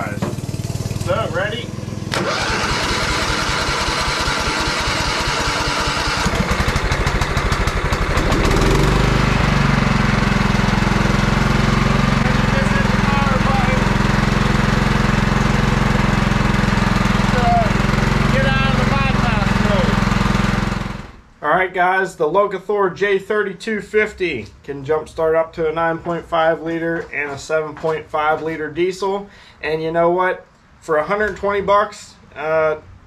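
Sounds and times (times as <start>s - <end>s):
electric starter cranking engine: 0.3s - 21.2s
small engine running: 0.3s - 21.2s.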